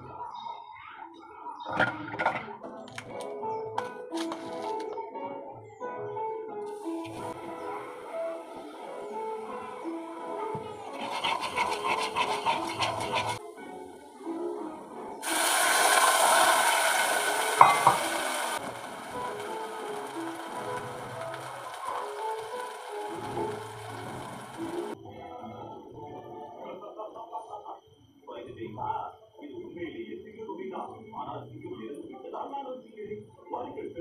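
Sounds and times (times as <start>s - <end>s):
background music: 0.0s - 27.0s
rough sizzle: 6.7s - 14.6s, 15.2s - 25.0s
water hissing in hot pot: 6.7s - 25.0s.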